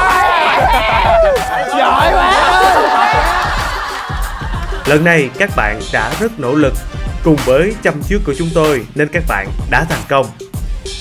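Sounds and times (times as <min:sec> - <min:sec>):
group of people laughing: 0:00.0 - 0:05.2
background music with steady beat: 0:00.0 - 0:11.0.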